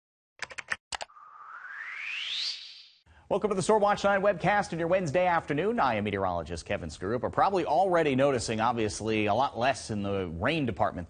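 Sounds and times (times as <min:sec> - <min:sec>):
rising whoosh: 0:01.1 - 0:03.0.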